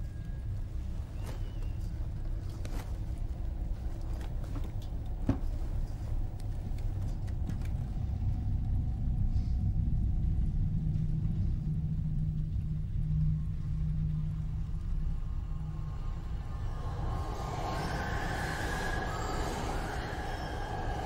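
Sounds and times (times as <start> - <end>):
deep hum: 0.0 - 21.0
low rumbling drone: 0.0 - 21.0.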